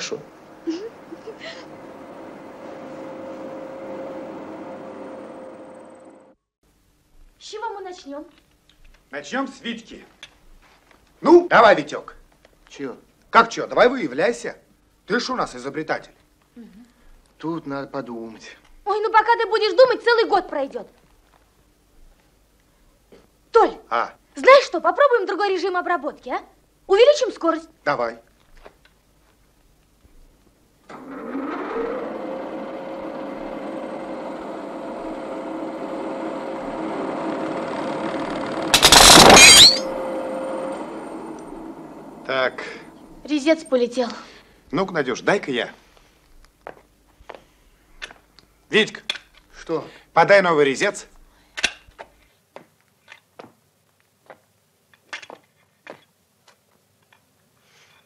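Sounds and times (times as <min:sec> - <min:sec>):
cutting tool breaking crash: 0:38.7 - 0:40.0.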